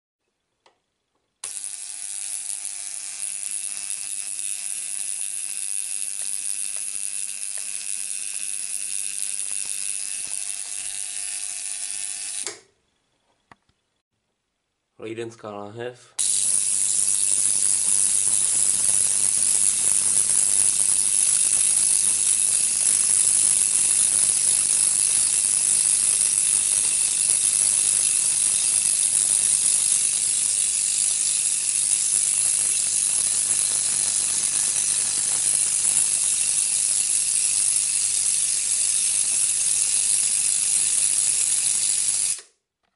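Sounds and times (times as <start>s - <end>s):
spark gap crackling buzz: 1.4s - 12.7s, 16.2s - 42.6s.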